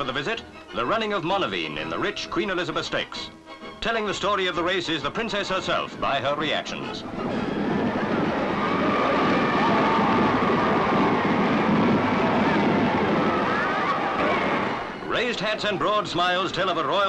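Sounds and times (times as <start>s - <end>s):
crowd cheering and shouting: 7.3s - 17.0s.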